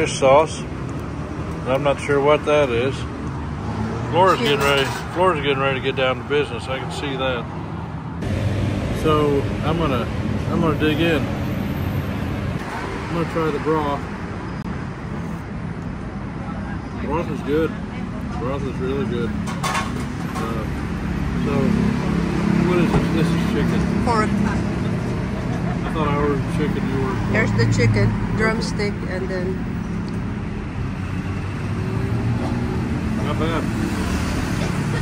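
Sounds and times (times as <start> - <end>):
city road traffic hum: 0.0 - 35.0.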